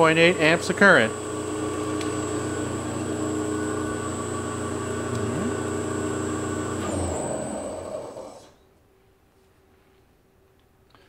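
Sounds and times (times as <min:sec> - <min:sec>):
electric motor hum: 0:00.0 - 0:08.6
high even drive whine: 0:02.3 - 0:06.8.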